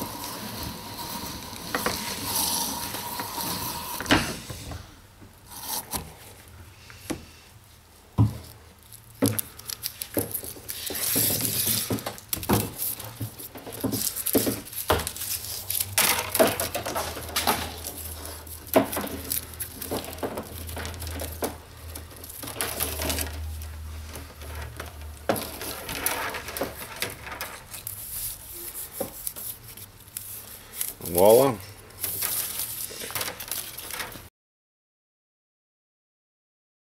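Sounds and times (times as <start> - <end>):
cable scraping through stripper: 0.0 - 4.4, 9.3 - 31.3.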